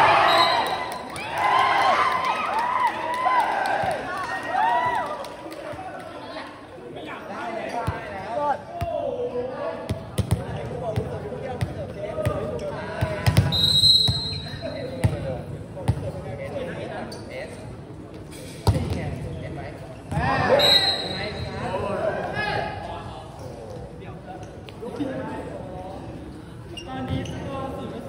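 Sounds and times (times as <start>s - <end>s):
referee whistle: 0.2s - 1.0s, 13.4s - 14.8s, 20.5s - 21.5s
players' voices echoing: 3.0s - 28.0s.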